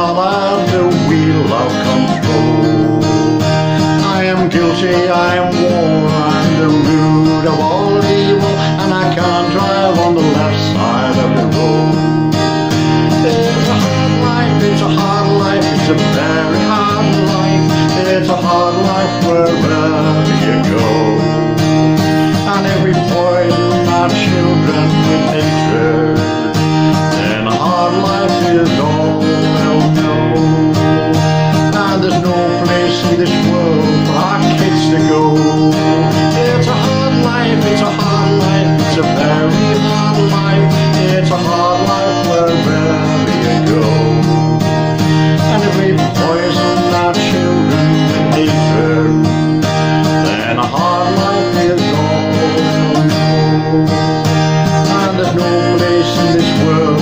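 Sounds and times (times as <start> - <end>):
acoustic guitar strumming: 0.0 - 57.0
man singing: 0.0 - 57.0.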